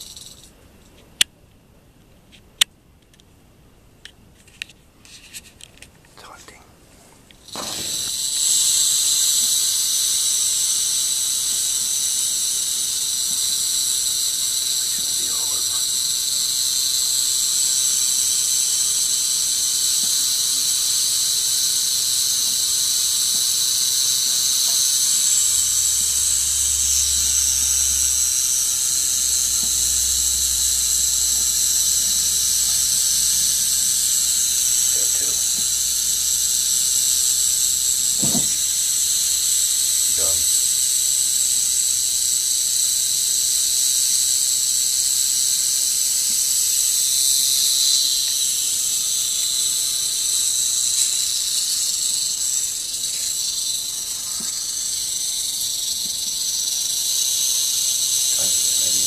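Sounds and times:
rattlesnake rattling: 0:00.0 - 0:00.6, 0:07.2 - 0:59.0.

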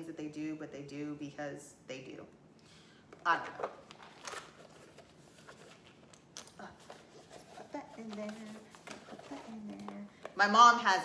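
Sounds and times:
faint rustling of bag handling: 0:03.6 - 0:10.4.

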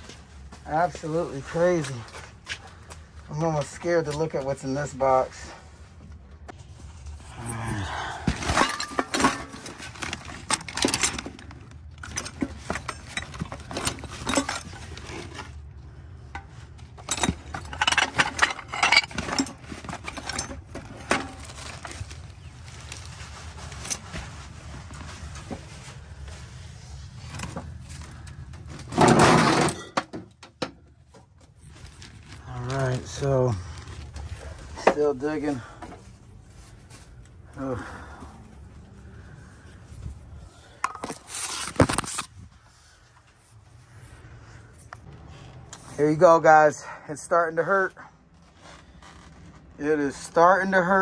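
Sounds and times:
glass bottles clinking: 0:17.0 - 0:21.6
plastic and paper rustling: 0:19.0 - 0:29.0, 0:31.3 - 0:37.2
rattling crash: 0:28.8 - 0:30.3.

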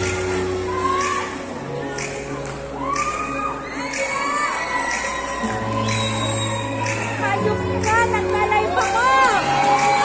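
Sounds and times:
stage music with bass notes: 0:00.0 - 0:03.6
audience cheering: 0:08.8 - 0:10.0.

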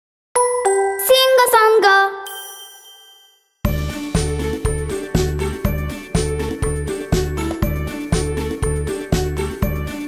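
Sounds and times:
bouncy children's song: 0:00.4 - 0:04.5
logo jingle chimes: 0:00.4 - 0:09.0
high bell-like ding: 0:02.2 - 0:03.7.

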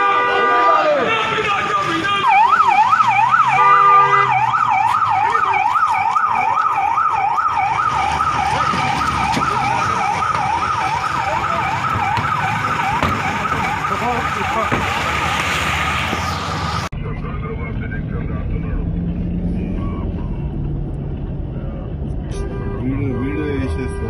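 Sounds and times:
car horn: 0:00.0 - 0:02.4, 0:03.4 - 0:04.5, 0:22.3 - 0:24.0
siren yelping: 0:00.5 - 0:15.2.

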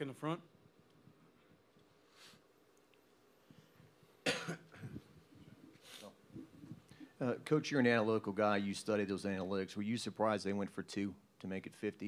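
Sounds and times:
person coughing: 0:04.2 - 0:05.0.

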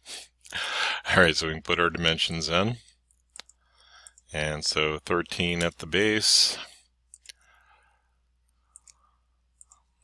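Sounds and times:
faint computer mouse clicks: 0:03.3 - 0:04.3, 0:08.7 - 0:09.0, 0:09.6 - 0:09.8.

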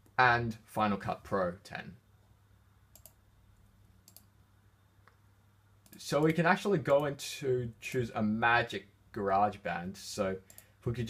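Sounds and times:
faint computer mouse clicks: 0:02.9 - 0:03.2, 0:04.0 - 0:04.3, 0:10.5 - 0:10.7.

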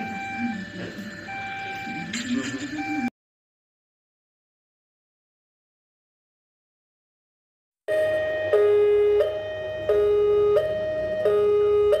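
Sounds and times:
level crossing two-tone alarm: 0:00.0 - 0:03.1, 0:07.9 - 0:12.0.

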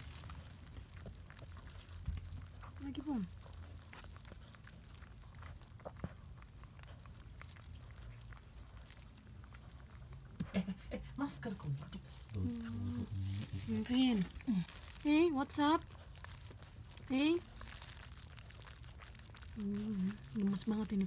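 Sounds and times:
dog licking puppy wet clicking: 0:00.0 - 0:12.3
low whimper: 0:12.3 - 0:13.7.

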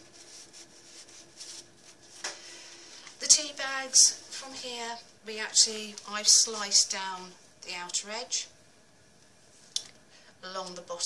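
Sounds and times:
crisp paper sound: 0:00.0 - 0:02.2
paper rustling: 0:00.0 - 0:02.3.

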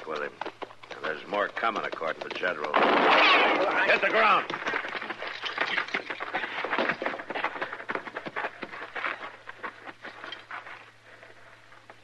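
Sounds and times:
crunches and knocks on rough ground: 0:00.4 - 0:10.6.

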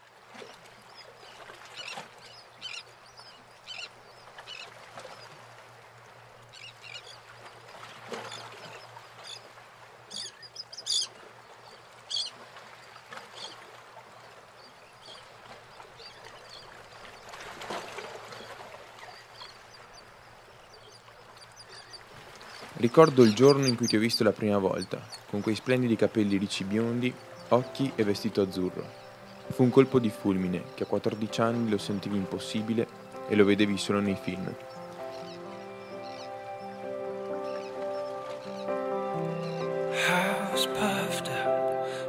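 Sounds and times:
birds squawking: 0:02.6 - 0:02.9, 0:03.7 - 0:03.9, 0:10.1 - 0:11.1, 0:12.1 - 0:12.3, 0:21.7 - 0:25.8, 0:34.1 - 0:41.0.

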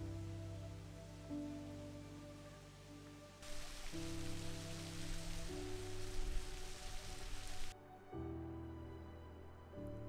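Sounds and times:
soft background music: 0:00.0 - 0:10.0
waterfall splashing: 0:03.4 - 0:07.8.

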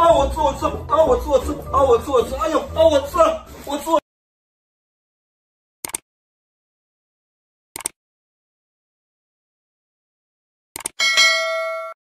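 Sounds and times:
quick clicks: 0:05.8 - 0:06.0, 0:07.8 - 0:08.0, 0:10.8 - 0:11.0
metallic notification ding: 0:11.0 - 0:12.0.

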